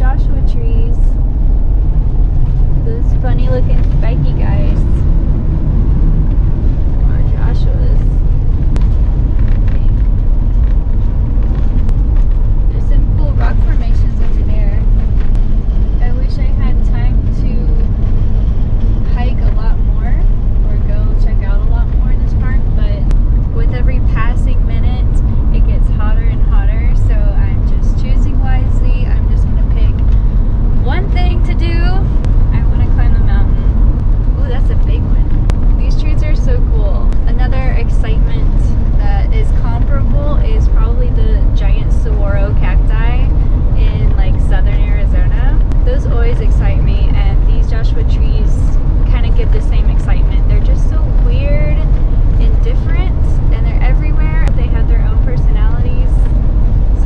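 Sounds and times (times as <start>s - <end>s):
air rushing through window: 0.0s - 57.0s
van interior road rumble: 0.0s - 57.0s.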